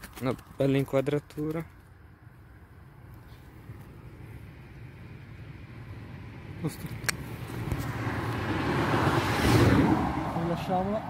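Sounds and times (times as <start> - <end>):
passing vehicle rushing: 4.0 - 11.0
sharp click: 6.8 - 7.8.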